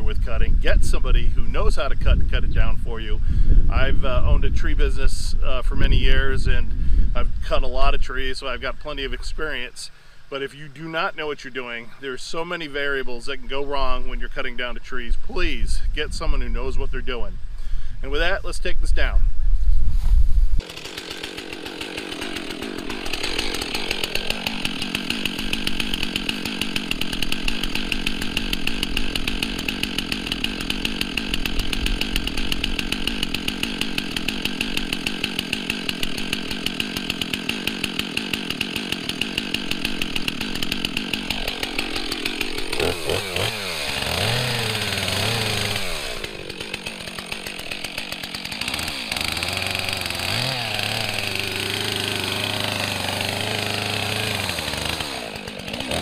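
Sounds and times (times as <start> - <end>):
chainsaw idling and revving: 20.6 - 56.0.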